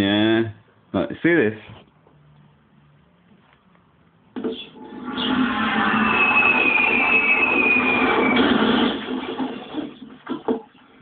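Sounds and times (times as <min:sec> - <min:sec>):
loud television audio: 0:04.3 - 0:11.0.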